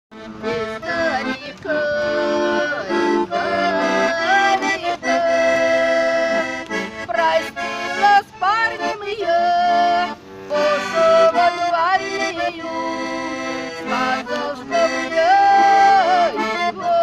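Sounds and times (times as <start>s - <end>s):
button accordion folk tune: 0.1s - 17.0s.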